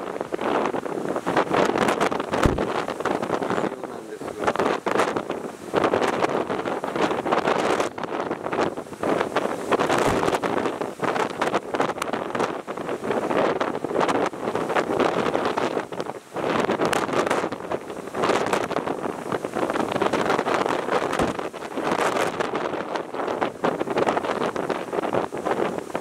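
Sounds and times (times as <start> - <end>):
gusting wind buffeting microphone: 0.0 - 26.0
heavy surf breaking: 0.0 - 26.0.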